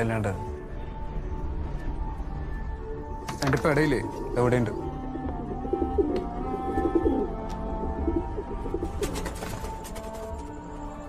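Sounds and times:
soft background music: 0.0 - 11.0
pigeons cooing: 4.0 - 9.3.

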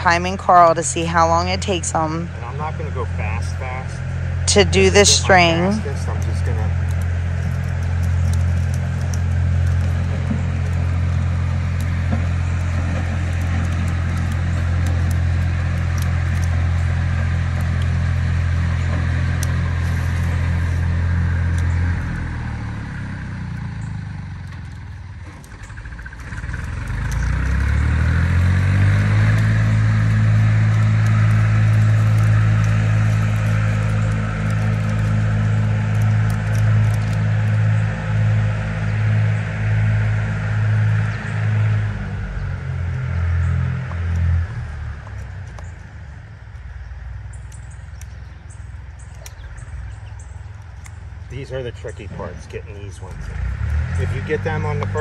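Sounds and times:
low mechanical hum: 0.0 - 55.0.

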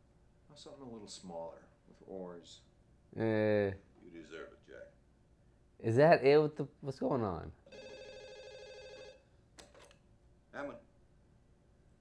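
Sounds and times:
telephone ringing: 7.7 - 9.3.

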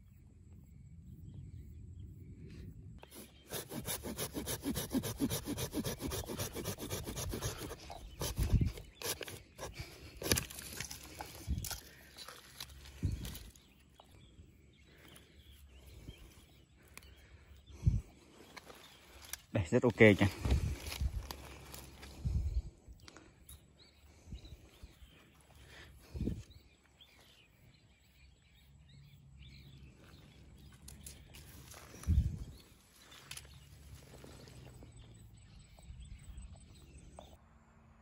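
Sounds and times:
hand saw cutting root: 3.0 - 13.4
root scraping: 3.0 - 13.8.

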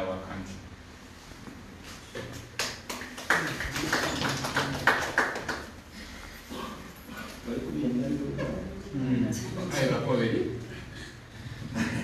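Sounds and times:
small group clapping: 2.2 - 6.0.

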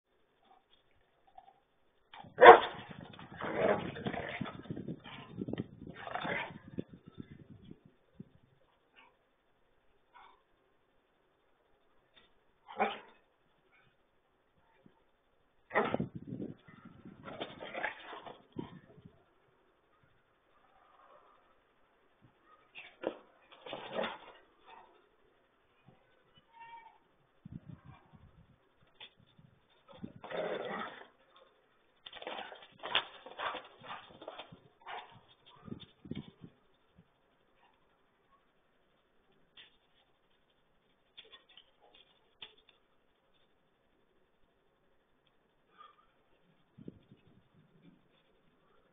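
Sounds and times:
dogs play-fighting and vocalising: 2.2 - 7.0, 15.7 - 19.0, 22.5 - 25.0, 29.8 - 36.4
dog barking: 2.4 - 2.8, 12.7 - 13.2
dog growling: 3.2 - 5.3, 5.9 - 6.8, 30.0 - 31.2.

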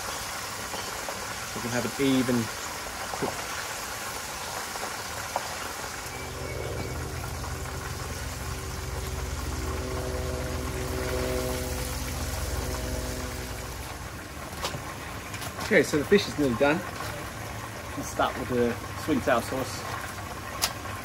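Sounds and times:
hot oil sizzling: 0.0 - 21.0
low motor hum: 5.9 - 15.4.

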